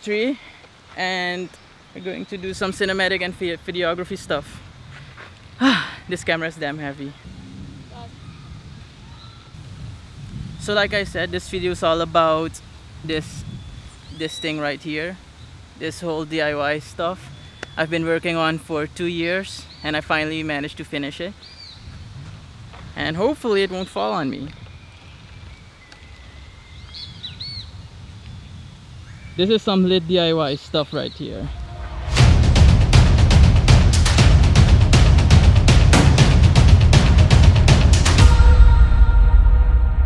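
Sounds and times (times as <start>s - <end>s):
bird chirps: 7.1s - 9.6s, 21.4s - 22.2s, 23.5s - 29.6s
low rumble: 7.2s - 8.8s, 31.5s - 40.0s.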